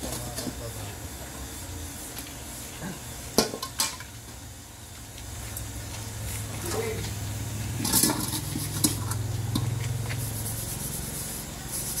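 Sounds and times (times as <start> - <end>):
metal pan being scrubbed: 7.8 - 11.2.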